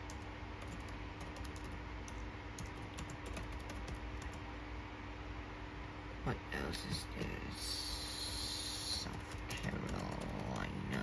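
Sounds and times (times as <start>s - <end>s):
computer keyboard typing: 0.0s - 4.4s, 9.0s - 10.7s
steady low hum: 0.0s - 11.0s.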